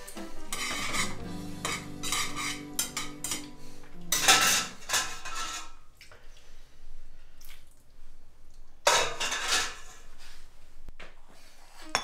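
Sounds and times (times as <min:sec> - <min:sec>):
metal tongs scraping a frying pan: 0:00.0 - 0:05.8.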